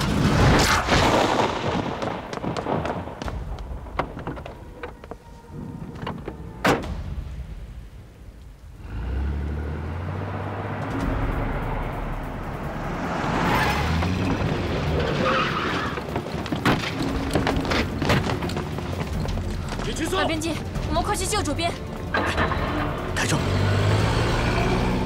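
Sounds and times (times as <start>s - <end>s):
truck engine rumble: 7.2s - 25.0s.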